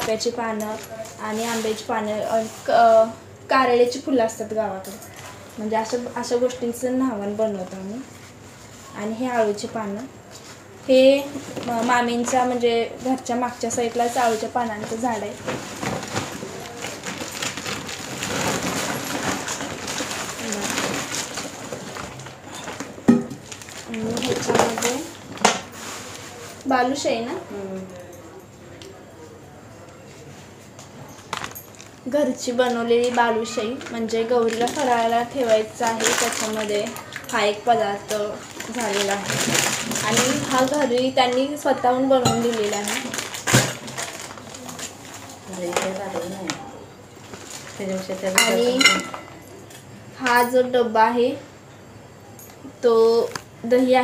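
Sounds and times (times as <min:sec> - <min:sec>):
plastic bags rustling and crinkling: 0:00.0 - 0:28.1, 0:30.1 - 0:49.6.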